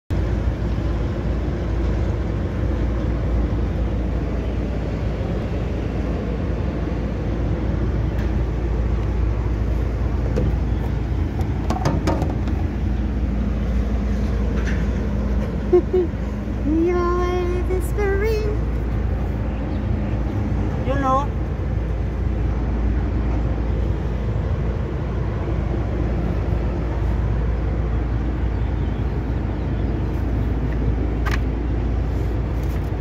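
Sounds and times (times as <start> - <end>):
construction site noise: 0.1 - 33.0
traffic rumble: 0.1 - 33.0.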